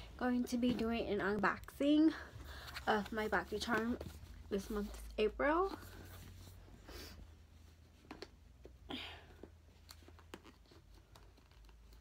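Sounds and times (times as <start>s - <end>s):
soft rustles: 0.0s - 8.7s.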